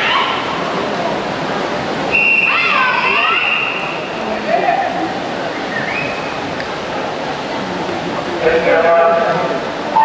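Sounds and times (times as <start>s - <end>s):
echoing chatter of voices: 0.0s - 10.0s
long high whistle tone: 2.1s - 2.7s.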